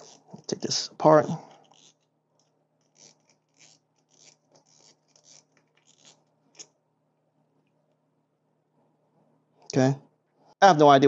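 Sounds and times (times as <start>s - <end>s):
fishing reel clicks and scrapes: 0.0s - 0.6s, 1.2s - 6.7s.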